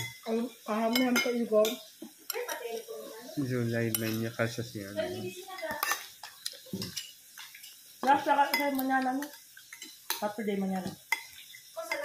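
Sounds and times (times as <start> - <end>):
cutlery clicking on dishes: 0.0 - 0.3, 0.9 - 2.9, 3.9 - 4.3, 5.6 - 12.0.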